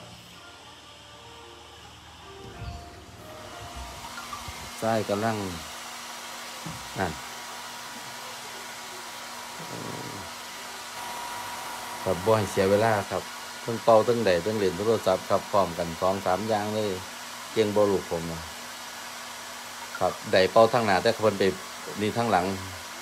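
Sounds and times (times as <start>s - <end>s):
hair dryer blowing hum: 0.0s - 23.0s
man speaking: 4.8s - 5.7s, 6.7s - 7.2s, 12.1s - 17.0s, 20.0s - 22.8s.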